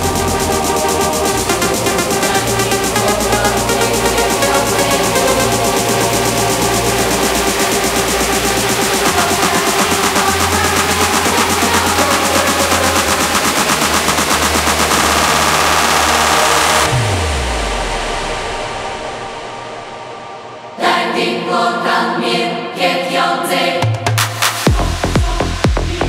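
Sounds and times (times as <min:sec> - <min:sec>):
falling bass sweep: 0:00.0 - 0:20.4
melodic techno music: 0:00.0 - 0:20.8, 0:24.2 - 0:26.0.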